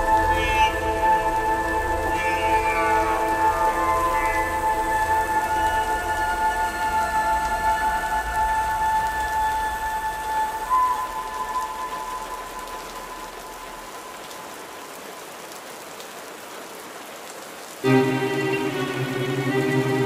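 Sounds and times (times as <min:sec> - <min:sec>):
bowed strings music: 0:00.0 - 0:09.3, 0:17.8 - 0:20.0
orchestral music: 0:00.0 - 0:12.3, 0:17.8 - 0:20.0
steady rain falling: 0:00.0 - 0:20.0.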